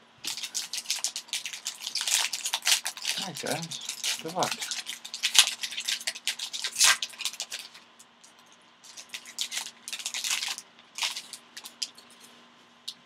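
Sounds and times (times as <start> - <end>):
plastic wrapper crinkling and tearing: 0.2 - 12.2.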